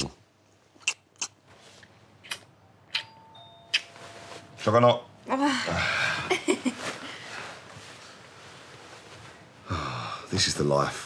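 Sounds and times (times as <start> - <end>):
kissing lip smacks: 0.8 - 1.4, 2.2 - 3.1
two-note electronic door chime: 3.0 - 4.6.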